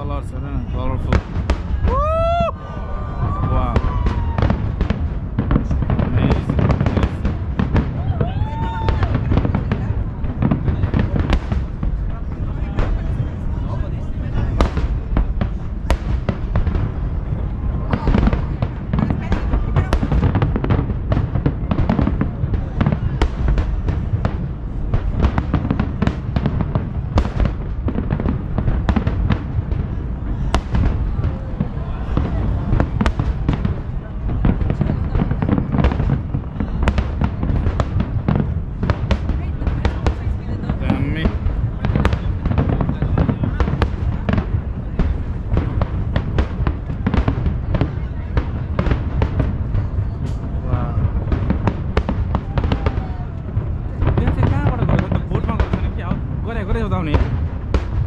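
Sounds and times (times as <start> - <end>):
deep rumble: 0.0 - 58.0
fireworks bangs: 0.0 - 58.0.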